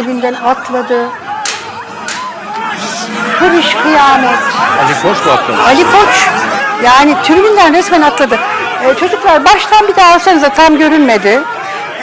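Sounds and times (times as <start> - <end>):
crowd of men shouting: 0.4 - 12.0.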